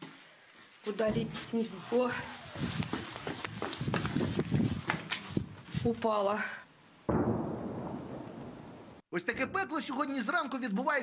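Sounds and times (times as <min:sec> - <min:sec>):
hurried footsteps: 0:00.9 - 0:06.1.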